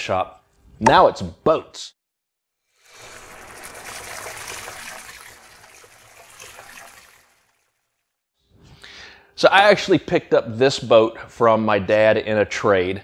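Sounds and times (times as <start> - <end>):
watery trickling rush: 2.7 - 8.2.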